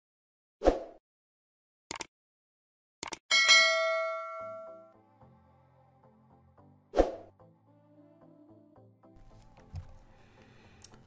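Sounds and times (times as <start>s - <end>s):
bright bell ding: 3.3s - 5.0s.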